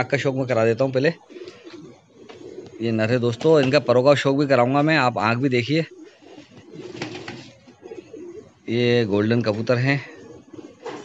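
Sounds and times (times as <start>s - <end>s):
pigeons cooing: 0.0s - 11.0s.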